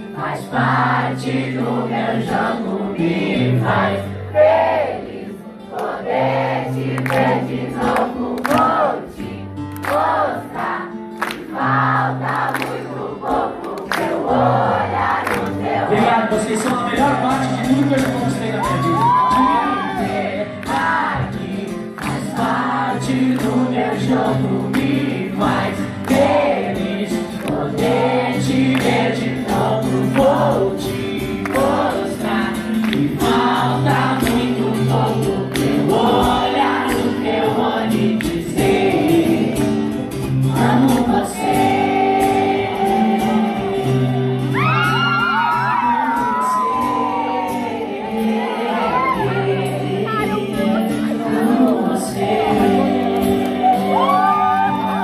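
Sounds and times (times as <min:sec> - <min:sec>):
strummed acoustic guitar: 0:00.0 - 0:54.1
audience singing in unison: 0:00.0 - 0:55.0.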